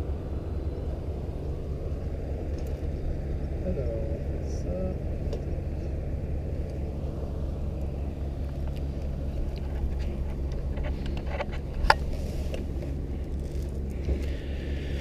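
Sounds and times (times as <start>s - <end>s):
turboprop engine hum: 0.0s - 15.0s.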